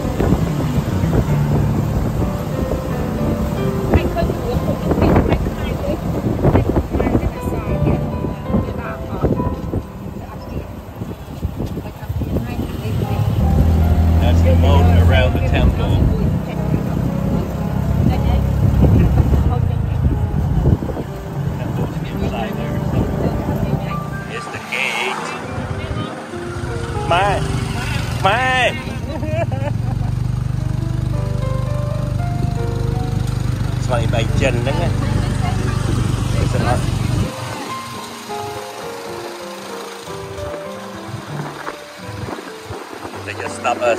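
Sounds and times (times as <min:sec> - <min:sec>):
music: 0:00.0 - 0:29.6, 0:30.3 - 0:43.9
motorcycle engine humming: 0:00.0 - 0:43.9
voices: 0:00.7 - 0:30.3, 0:33.6 - 0:41.9, 0:43.0 - 0:43.9.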